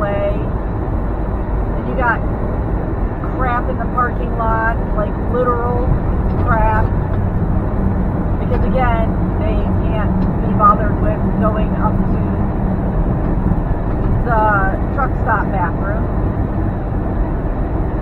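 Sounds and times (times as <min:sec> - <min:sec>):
woman talking: 0:00.0 - 0:00.5, 0:01.8 - 0:02.2, 0:03.2 - 0:06.9, 0:08.4 - 0:12.4, 0:14.2 - 0:16.1
road noise: 0:00.0 - 0:18.0
truck engine drone: 0:00.0 - 0:18.0.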